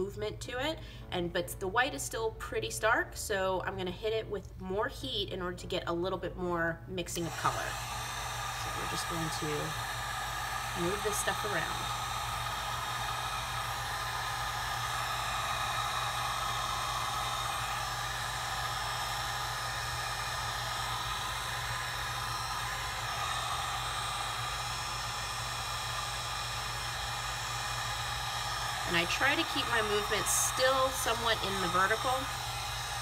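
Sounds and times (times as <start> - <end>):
heat gun blowing air: 7.2 - 33.0.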